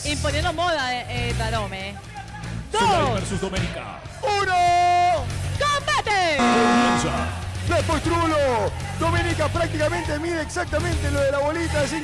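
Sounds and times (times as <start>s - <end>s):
loud music with low beat: 6.4s - 7.6s.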